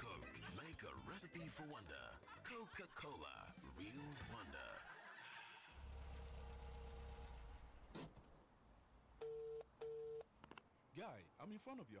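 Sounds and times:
telephone ringing beeps: 9.2 - 10.3.

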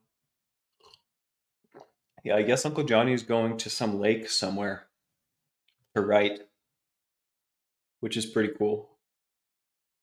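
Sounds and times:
sipping and swallowing: 0.7 - 1.1.

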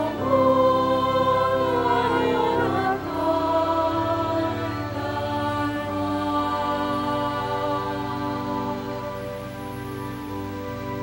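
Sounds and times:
slow psalm music: 0.0 - 11.0.

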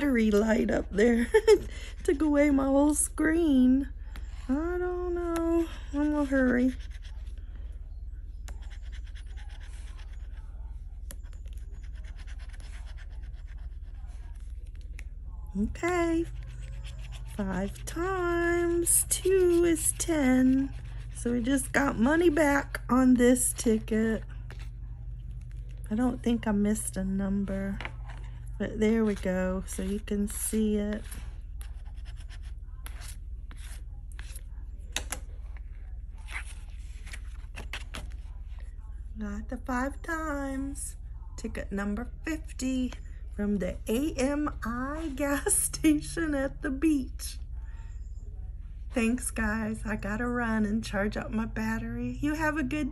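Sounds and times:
steady low hum: 0.0 - 52.9
scraper rubbing paper ticket: 8.6 - 10.4, 11.1 - 14.8.

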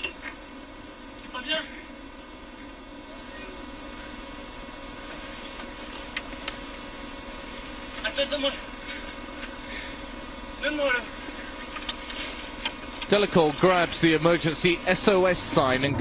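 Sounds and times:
car engine idling: 0.0 - 15.9.

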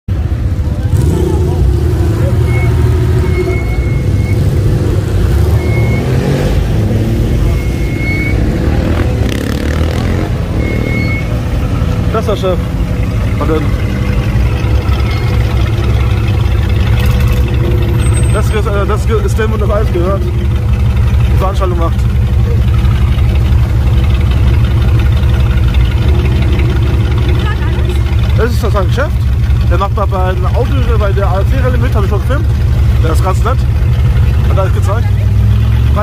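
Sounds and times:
car engine running at low speed: 0.1 - 36.0
people talking: 12.1 - 12.7, 13.4 - 13.8, 18.2 - 20.6, 21.2 - 22.7, 27.3 - 33.7, 34.4 - 36.0.

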